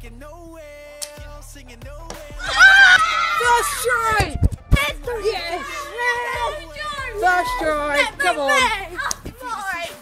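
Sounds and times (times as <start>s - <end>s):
faint background music: 0.0s - 10.0s
boy screaming excitedly: 2.4s - 9.1s.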